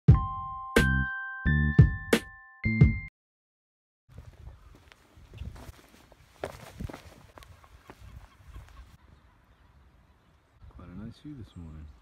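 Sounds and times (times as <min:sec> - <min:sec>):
faint footsteps: 0:04.1 - 0:09.0.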